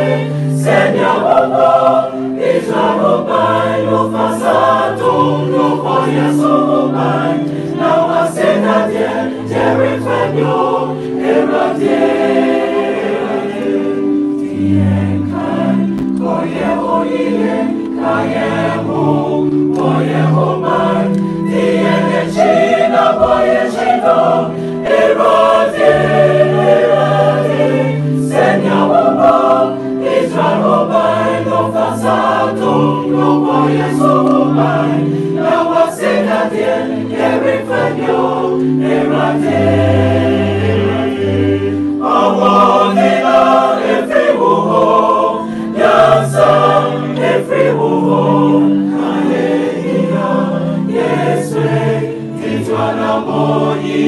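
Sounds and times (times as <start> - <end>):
choir singing gospel: 0.0 - 54.0.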